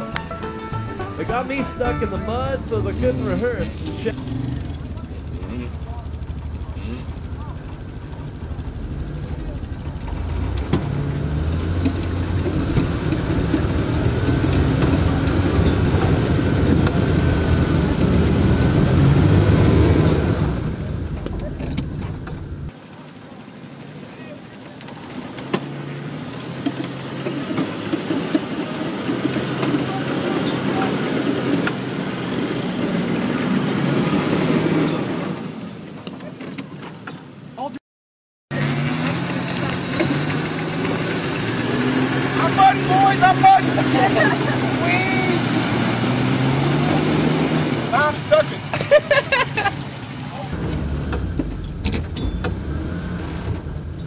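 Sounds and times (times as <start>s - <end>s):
car engine revving under load: 0.0s - 22.8s, 24.6s - 37.0s, 38.5s - 48.1s, 49.8s - 54.0s
engine wading through muddy water: 1.2s - 37.7s, 38.5s - 54.0s.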